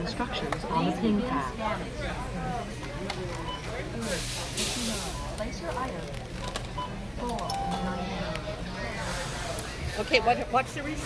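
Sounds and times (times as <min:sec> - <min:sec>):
in-store music: 0:07.2 - 0:10.0.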